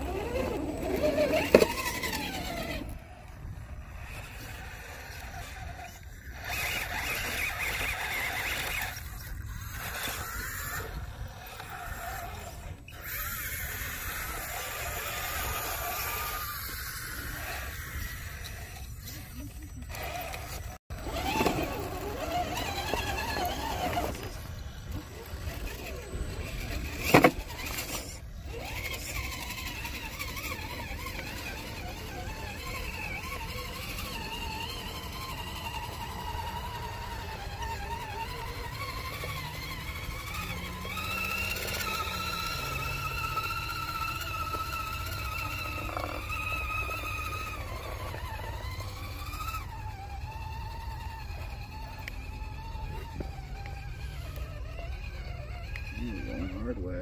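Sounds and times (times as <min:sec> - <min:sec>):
electric motor whining: 0:00.0 - 0:57.0.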